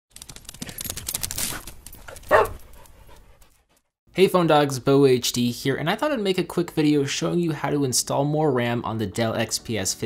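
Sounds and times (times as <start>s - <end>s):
dog bark: 2.3s - 2.6s.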